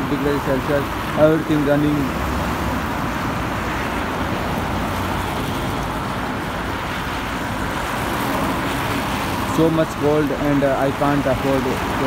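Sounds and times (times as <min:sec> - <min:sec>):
cars driving past: 0:00.0 - 0:12.0
tyre and engine noise: 0:00.0 - 0:12.0.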